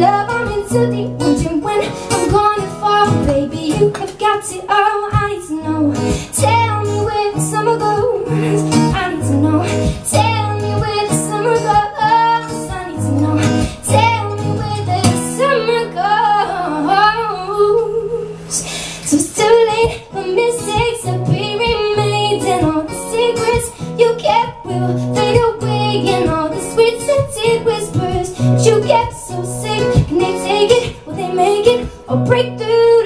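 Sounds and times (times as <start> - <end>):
acoustic guitar: 0.0 - 33.0
woman singing: 0.0 - 33.0.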